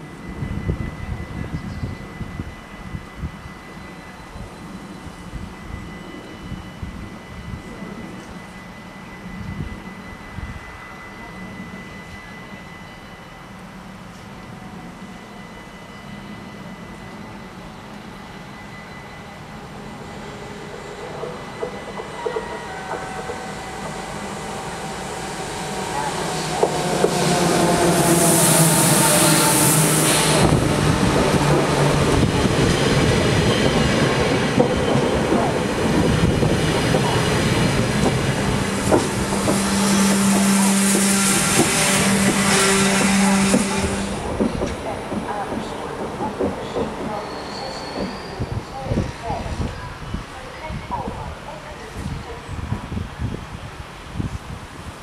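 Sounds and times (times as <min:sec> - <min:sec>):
electric train passing: 0:00.0 - 0:55.0
high hiss of train: 0:00.0 - 0:55.0.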